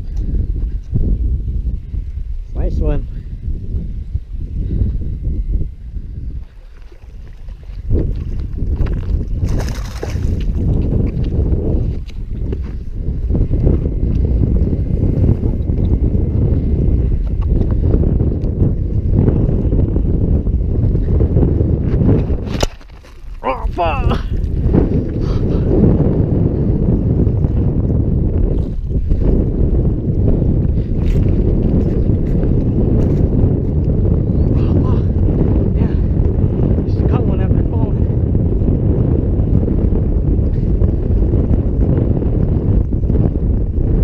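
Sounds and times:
wind buffeting microphone: 0.0 - 44.0.

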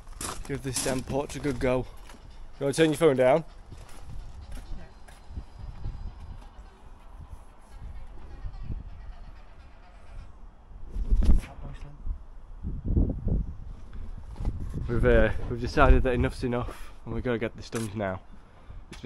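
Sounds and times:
wind buffeting microphone: 0.0 - 17.3.

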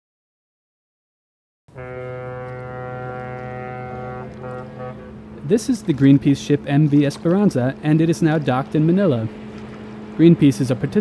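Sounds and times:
ship's horn blast: 1.7 - 7.8
low hum: 1.7 - 11.0.

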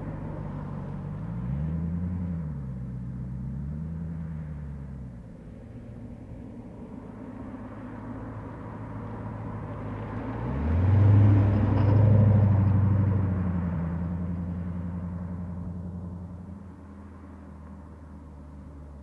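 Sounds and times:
car engine driving past: 0.0 - 19.0.

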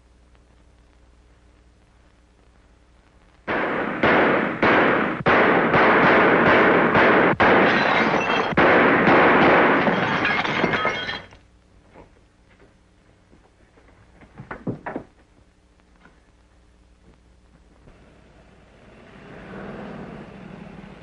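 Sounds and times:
automatic gunfire bursts: 3.5 - 10.0
glass breaking: 7.4 - 11.4.

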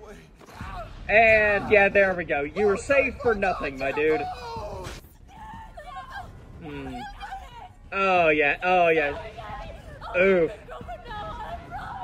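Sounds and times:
soundtrack voices: 0.0 - 12.0.

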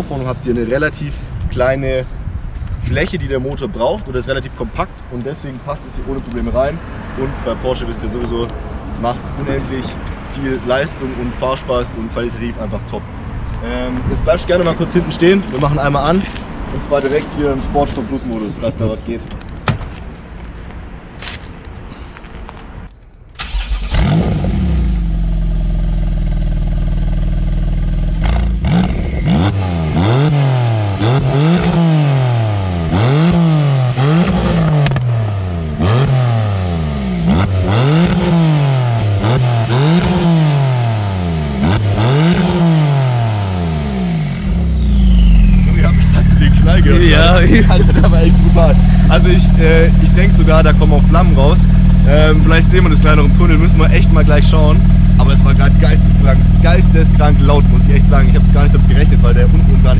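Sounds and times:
car engine revving: 3.0 - 18.9, 23.4 - 59.9
exhaust pops and bangs: 19.5 - 20.2, 34.1 - 35.2
car engine idling: 36.8 - 59.9
person laughing: 46.8 - 49.2.

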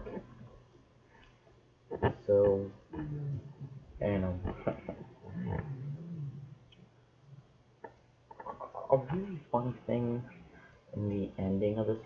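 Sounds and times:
person making growly vocal sound: 2.2 - 4.5, 5.2 - 6.6.

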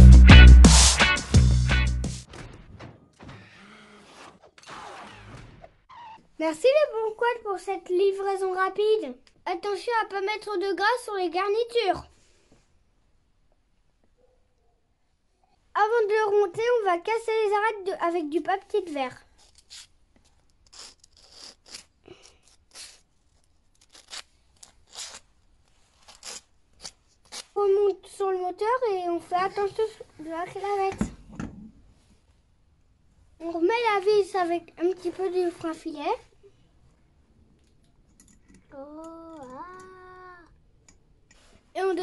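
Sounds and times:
sandpaper scratching: 19.4 - 19.9, 20.6 - 23.0
small metal parts clicking: 37.6 - 39.9.

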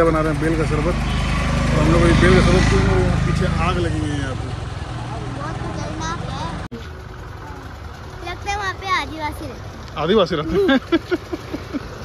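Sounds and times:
voices talking: 0.0 - 11.9
road traffic rumble: 0.0 - 12.0.

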